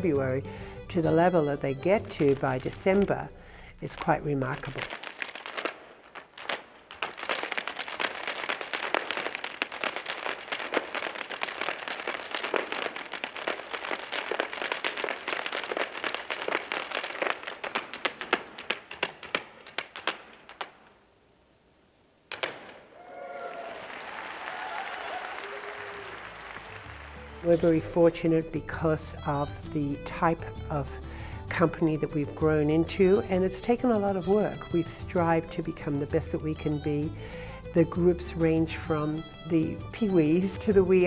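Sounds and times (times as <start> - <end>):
hard shoes tapping on stage: 4.0 - 20.9
applause: 23.0 - 27.6.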